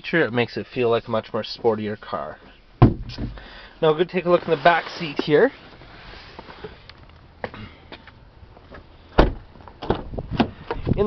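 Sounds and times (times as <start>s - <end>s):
car door shutting with thud: 9.2s - 10.6s.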